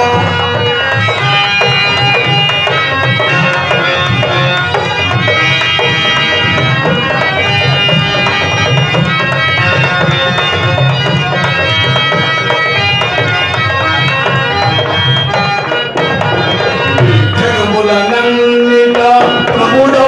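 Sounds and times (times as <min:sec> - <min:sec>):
harmonium: 0:00.0 - 0:20.0
tabla strokes: 0:00.0 - 0:20.0.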